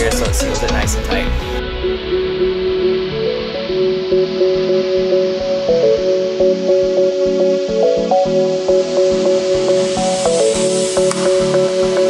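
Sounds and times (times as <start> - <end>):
electronic music with steady beat: 0.0 - 12.0
hiss: 8.8 - 12.0.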